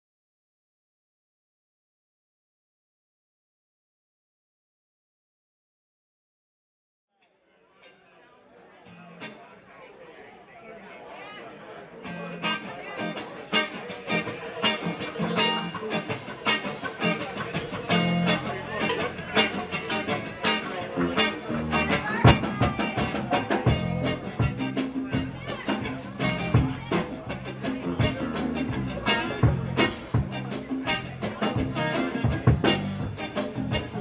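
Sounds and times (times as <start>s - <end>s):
rock band playing: 12.0s - 34.0s
drums hitting hard: 21.8s - 34.0s.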